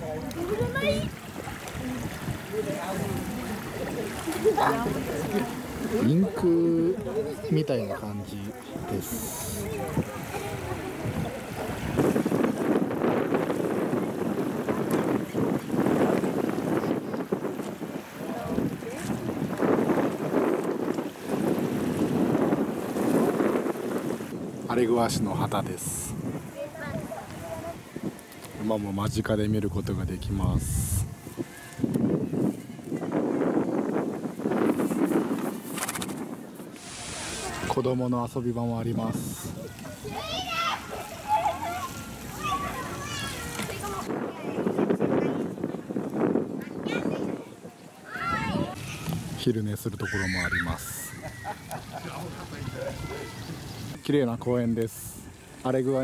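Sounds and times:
wind buffeting microphone: 0.0 - 54.1
outdoor background hiss: 36.4 - 44.6, 47.8 - 56.0
children calling out: 39.6 - 44.6, 46.7 - 49.0, 50.0 - 51.8, 52.4 - 53.7.

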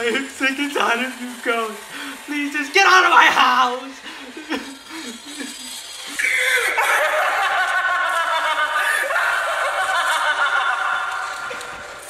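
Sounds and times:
high-pitched laugh: 3.9 - 12.0.

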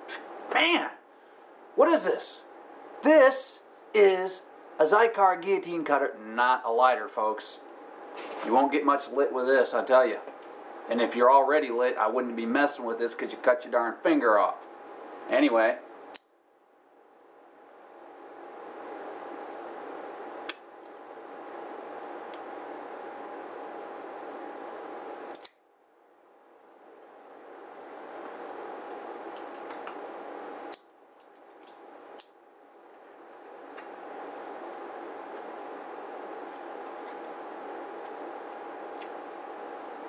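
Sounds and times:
electric fan running: 0.0 - 40.0
cigar cutter clicks: 25.3 - 25.6.

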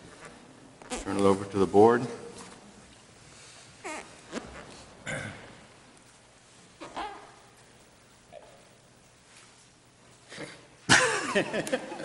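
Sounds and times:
man laughing: 10.3 - 12.0.

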